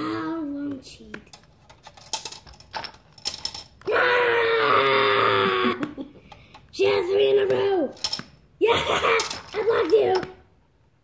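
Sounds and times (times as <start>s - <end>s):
child screaming: 3.9s - 5.8s.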